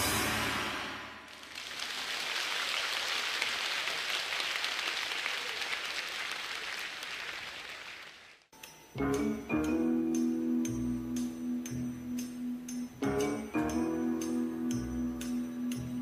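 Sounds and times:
audience applauding: 0:01.2 - 0:08.5.

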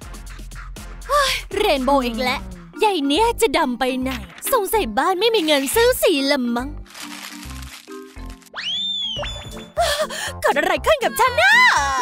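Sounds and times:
background music: 0:00.0 - 0:12.0
sheet crinkling being crumpled: 0:06.8 - 0:08.7
comic rising and falling whistle: 0:08.6 - 0:09.8.

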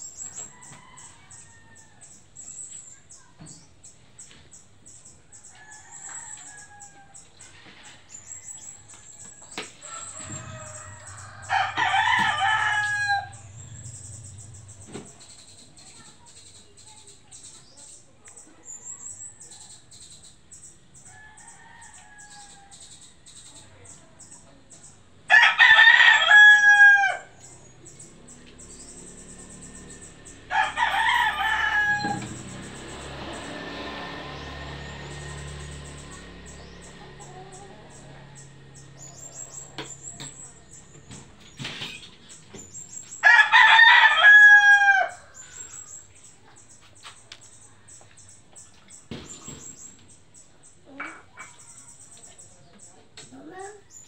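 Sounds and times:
rooster crowing: 0:00.4 - 0:02.2, 0:09.8 - 0:14.1, 0:25.3 - 0:27.5, 0:30.0 - 0:35.2, 0:43.2 - 0:46.0.

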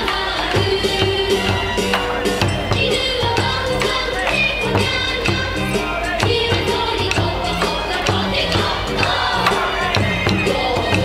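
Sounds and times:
crowd shouting: 0:00.0 - 0:11.0
dance music with drum beat: 0:00.0 - 0:11.0.

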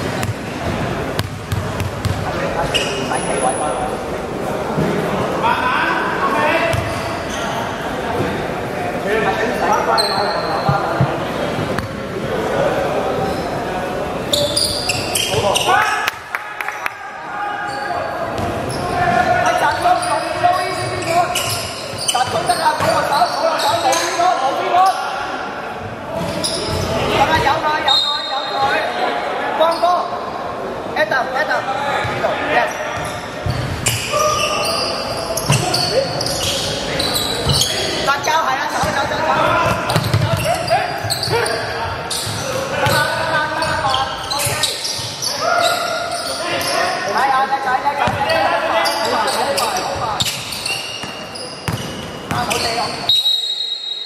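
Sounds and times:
players' voices: 0:00.0 - 0:54.0.

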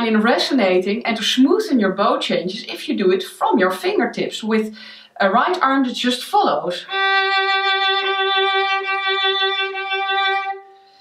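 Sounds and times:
violin bowed long note: 0:06.9 - 0:11.0.

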